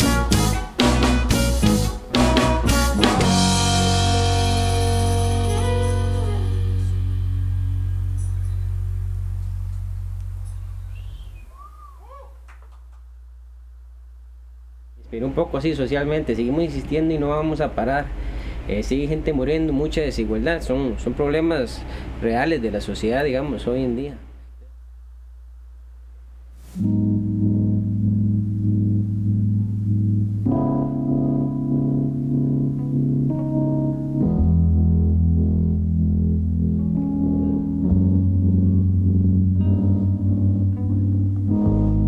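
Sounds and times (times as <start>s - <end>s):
sustained keyboard chord: 0.0s - 10.9s, 26.8s - 42.0s
reggae band low note ringing: 0.0s - 11.5s, 26.8s - 42.0s
whistle-like chirps: 10.9s - 12.2s.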